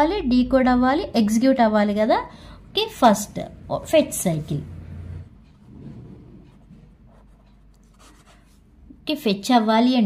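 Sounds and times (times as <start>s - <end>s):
pen scratching on paper: 5.6s - 8.6s.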